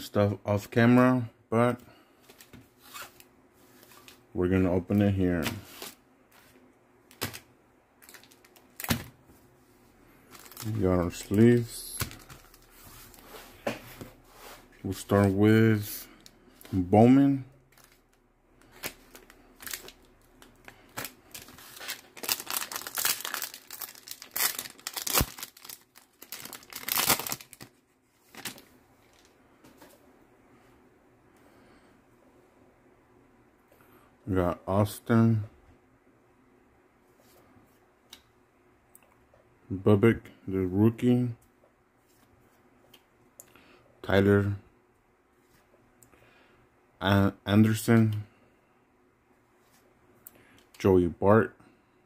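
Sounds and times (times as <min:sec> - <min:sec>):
foil crinkling: 0:10.3 - 0:13.3, 0:17.7 - 0:29.3.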